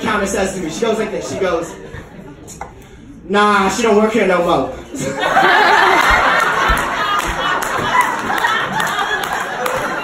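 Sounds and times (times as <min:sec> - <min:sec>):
audience laughing and cheering: 0:05.0 - 0:10.0.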